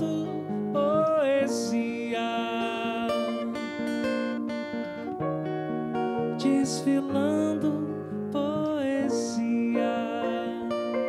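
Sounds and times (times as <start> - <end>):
person singing: 0.0 - 4.3, 6.3 - 11.0
acoustic guitar: 0.0 - 11.0
grand piano: 0.0 - 11.0.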